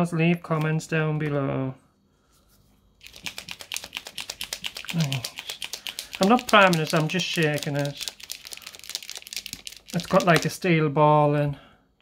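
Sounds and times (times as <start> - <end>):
ball rattling in shaken marker: 3.0 - 10.6.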